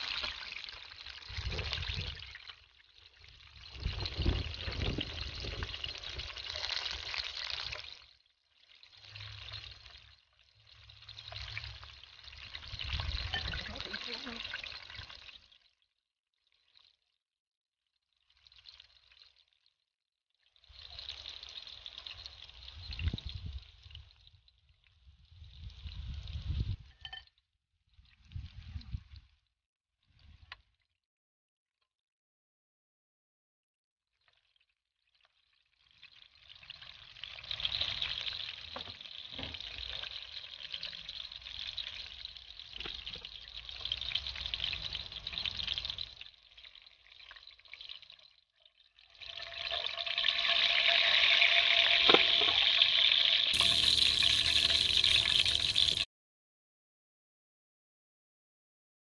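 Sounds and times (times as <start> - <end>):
food sizzling in hot oil: 0.0 - 15.7, 20.6 - 24.2, 35.8 - 48.2, 49.0 - 56.1.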